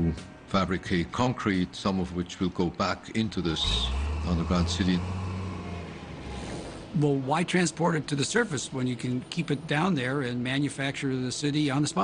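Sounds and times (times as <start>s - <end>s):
engine rumble: 3.4s - 7.0s.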